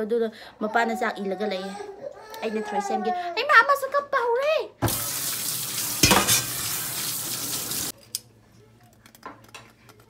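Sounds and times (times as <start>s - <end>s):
tap water splashing on steel: 5.8s - 6.8s.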